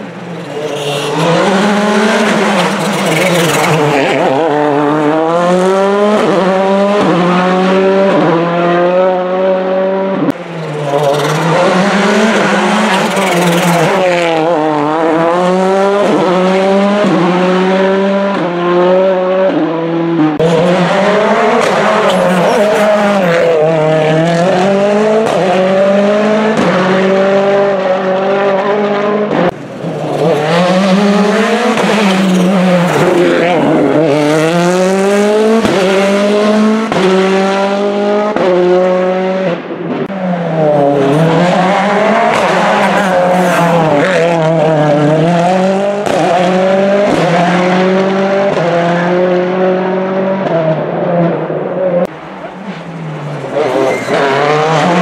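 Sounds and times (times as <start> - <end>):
rally car engines revving: 0.0 - 55.0.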